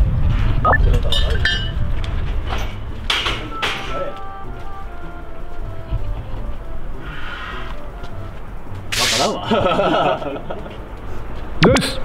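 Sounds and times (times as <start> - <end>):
voices: 2.6 - 12.0.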